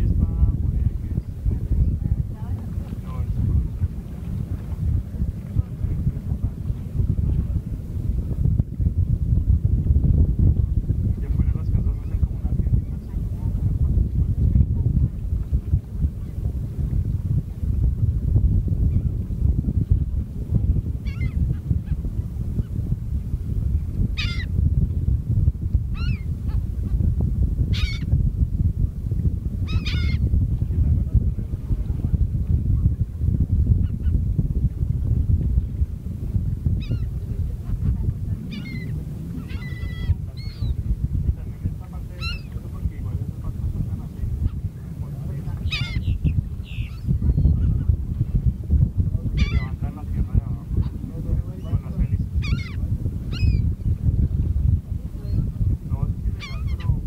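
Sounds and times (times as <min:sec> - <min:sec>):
steady low rumble: 0:00.0 - 0:57.0
gulls calling: 0:21.0 - 0:21.4, 0:24.2 - 0:24.5, 0:26.0 - 0:26.6, 0:27.7 - 0:28.1, 0:29.7 - 0:30.3, 0:36.8 - 0:37.2, 0:38.4 - 0:40.8, 0:42.1 - 0:42.6, 0:45.4 - 0:47.9, 0:49.4 - 0:49.9, 0:51.6 - 0:53.7, 0:56.3 - 0:57.0.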